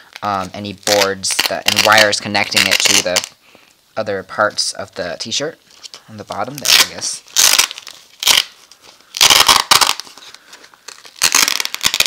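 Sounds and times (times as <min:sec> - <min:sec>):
hook-and-loop fastener ripping: 0:00.2 - 0:03.3, 0:06.5 - 0:08.6, 0:09.2 - 0:12.0.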